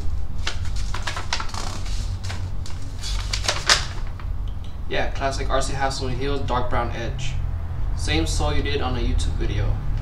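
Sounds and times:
paper rustling and crinkling: 0.0s - 4.3s
steady low hum: 0.0s - 10.0s.

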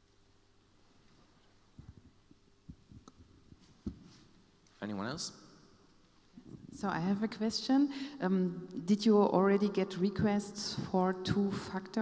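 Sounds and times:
microphone handling thumps: 1.8s - 4.2s.

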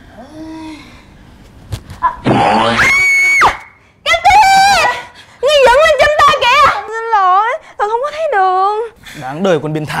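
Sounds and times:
long high scream: 2.5s - 3.8s
woman's high wavering wail: 2.8s - 3.7s.

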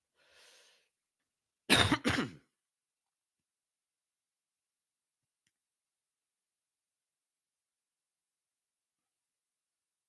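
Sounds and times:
man clearing his throat: 1.7s - 2.5s.

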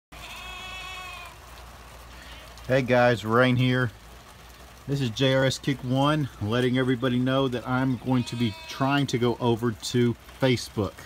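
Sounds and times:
livestock bleating: 0.2s - 1.4s, 7.6s - 9.1s.

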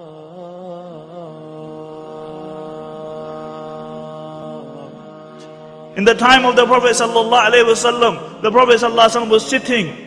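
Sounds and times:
long held chant-like tone: 0.0s - 10.0s.

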